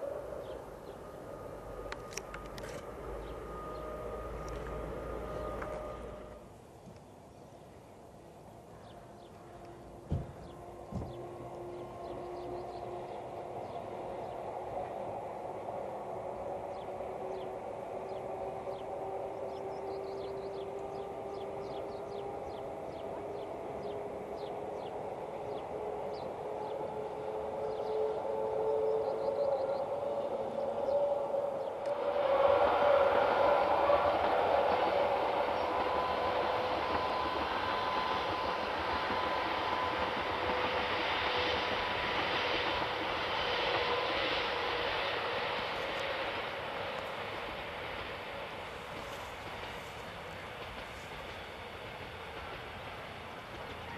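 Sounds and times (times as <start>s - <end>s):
wheel and rail rumble: 0.0s - 6.6s, 29.8s - 53.9s
electric train whine: 0.0s - 53.9s.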